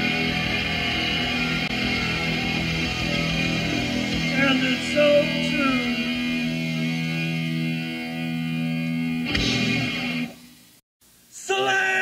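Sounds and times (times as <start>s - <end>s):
rock band music: 0.0s - 10.5s.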